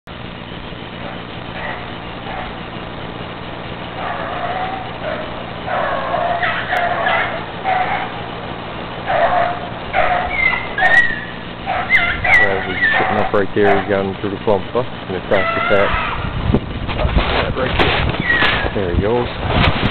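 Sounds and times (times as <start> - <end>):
steady low hum: 0.0 - 19.9
hound baying: 0.8 - 14.1, 15.2 - 16.4.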